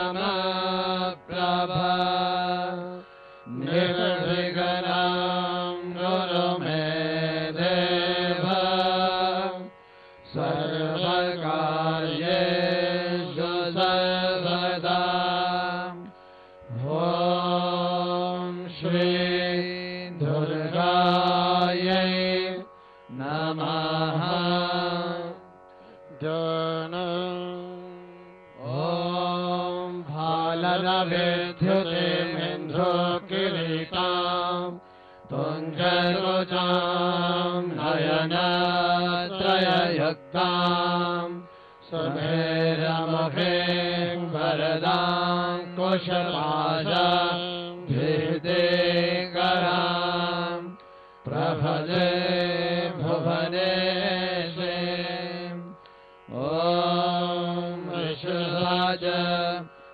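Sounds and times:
man chanting into a microphone: 0.0 - 9.7, 26.2 - 28.0, 28.6 - 55.8, 56.4 - 59.7.

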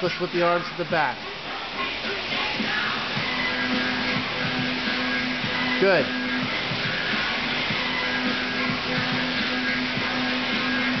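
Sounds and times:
rowing machine flywheels whirring: 0.0 - 11.0
steady hum: 0.0 - 11.0.

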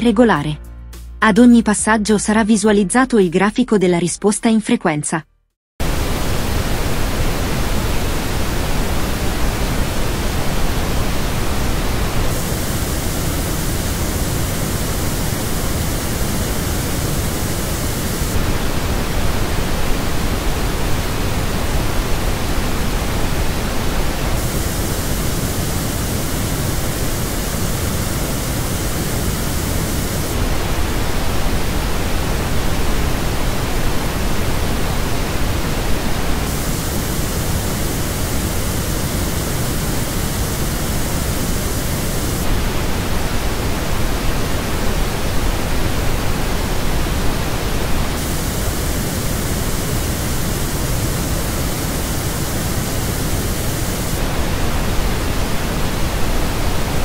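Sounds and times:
pink noise: 5.8 - 57.0.

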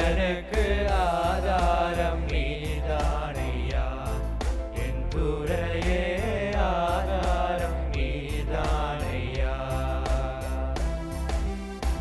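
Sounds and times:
men singing through microphones: 0.0 - 11.0.

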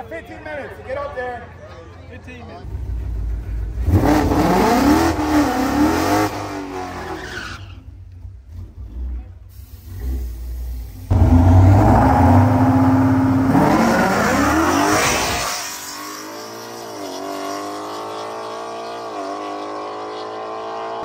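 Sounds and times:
drag race car engine revving: 3.5 - 7.8, 8.5 - 21.0
engine held at high revs: 3.8 - 6.7, 11.1 - 15.4.

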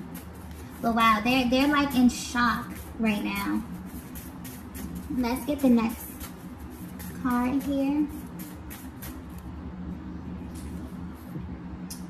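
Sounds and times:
cards rustling: 0.0 - 1.8, 2.6 - 9.3
steady low hum: 0.0 - 12.0.

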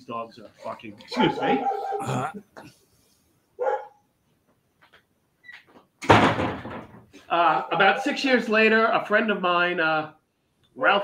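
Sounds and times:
dog barking: 1.1 - 2.1, 3.6 - 4.0.

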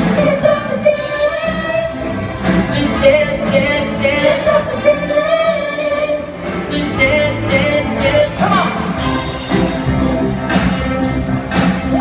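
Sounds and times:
choir singing: 0.0 - 9.4
band with horn section: 0.0 - 12.0.

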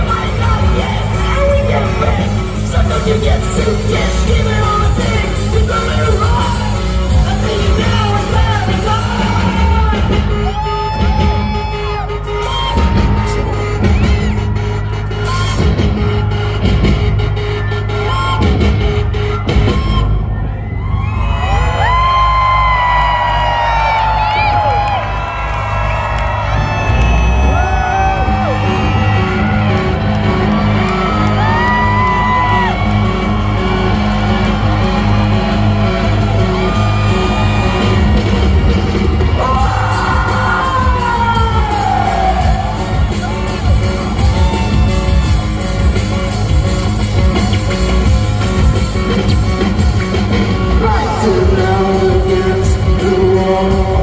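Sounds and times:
live rock band: 0.0 - 21.1, 21.7 - 54.0.

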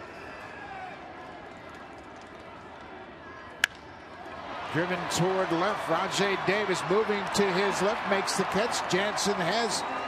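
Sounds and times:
ballpark crowd noise: 0.0 - 10.0
baseball bat cracking ball: 3.6 - 3.9.

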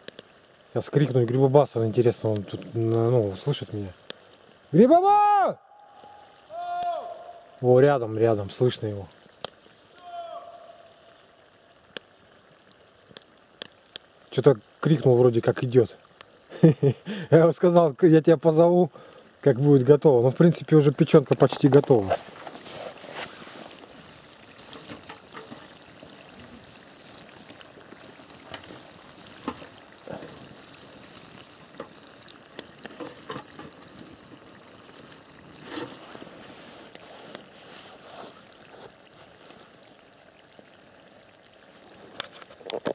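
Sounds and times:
pops and crackles: 0.0 - 4.7, 9.1 - 16.8, 19.0 - 42.9
food sizzling in a pan: 0.0 - 42.9.

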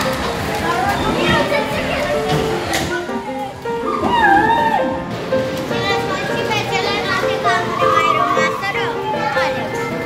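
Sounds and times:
children shouting: 3.7 - 5.1, 5.8 - 10.0.

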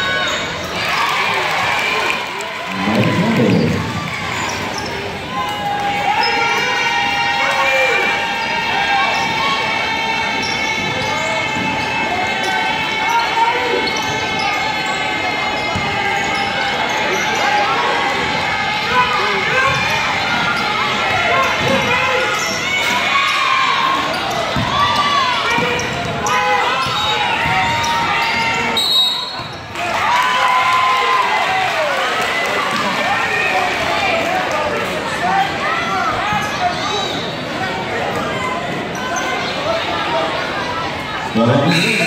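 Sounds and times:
crowd talking: 0.0 - 42.0
sneakers squeaking: 2.7 - 5.3, 8.4 - 9.6, 10.3 - 18.0, 19.5 - 29.7, 36.1 - 39.7.

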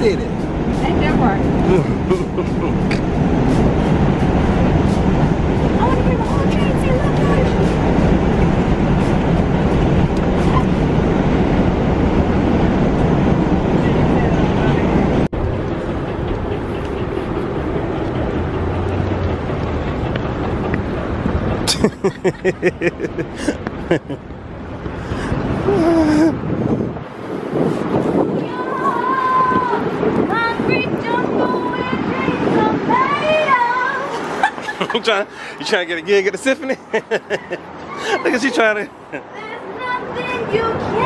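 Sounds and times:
street noise: 0.0 - 41.0
subway car rumbling and rattling: 0.0 - 41.0.

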